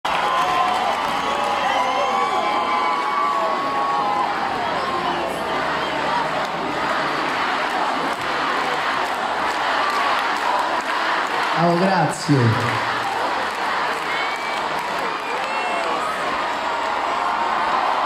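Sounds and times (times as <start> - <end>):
arena crowd cheering: 0.0 - 18.0.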